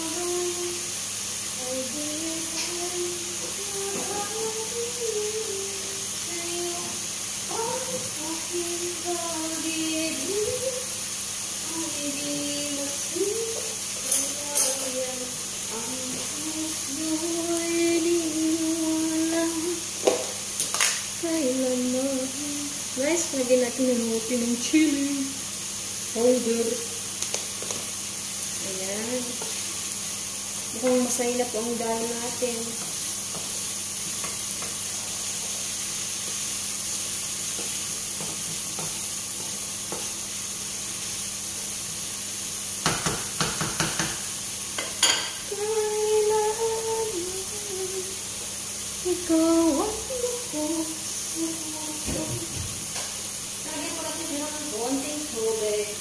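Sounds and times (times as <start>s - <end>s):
woman humming a slow tune: 0.0s - 1.0s, 1.6s - 11.0s, 11.6s - 19.9s, 21.2s - 25.4s, 45.4s - 48.2s, 49.0s - 52.7s
food sizzling in a frying pan: 0.0s - 56.0s
steady hiss: 0.0s - 56.0s.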